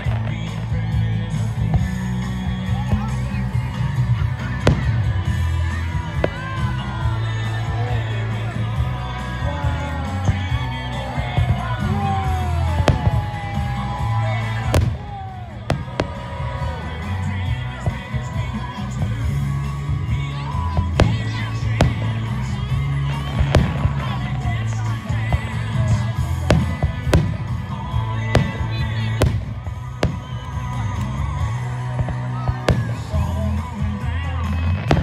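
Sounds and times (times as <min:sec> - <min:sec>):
music with singing: 0:00.0 - 0:35.0
firework bangs: 0:04.5 - 0:07.3, 0:10.1 - 0:33.6, 0:34.7 - 0:35.0.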